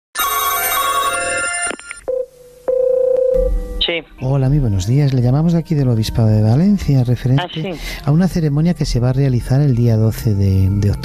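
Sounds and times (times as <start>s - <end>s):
telephone ringing: 0.2s - 3.8s.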